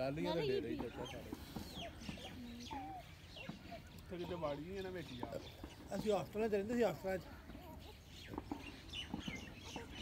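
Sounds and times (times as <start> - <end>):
faint bird chirps: 0.4 - 6.2.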